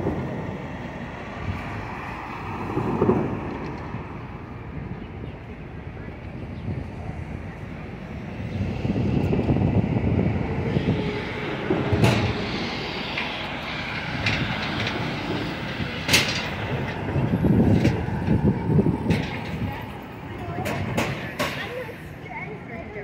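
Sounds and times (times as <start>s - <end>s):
city street traffic: 0.0s - 23.0s.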